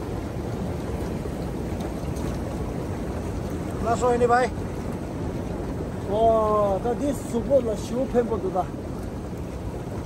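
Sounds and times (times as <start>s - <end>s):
hot tub jets bubbling: 0.0s - 10.0s.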